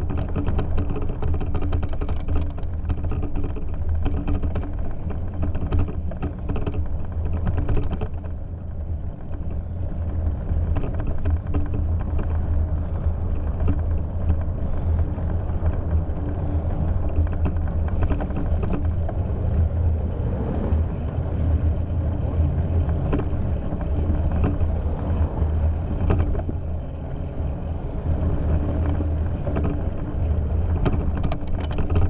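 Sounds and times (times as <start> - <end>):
low rumble of wind and vibration: 0.0 - 32.0.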